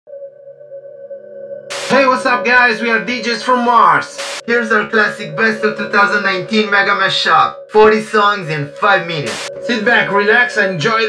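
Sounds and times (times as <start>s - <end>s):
short burst of noise: 1.7s - 2.0s
synth chord drone: 1.7s - 7.0s, 7.6s - 10.6s
person speaking: 1.7s - 11.0s.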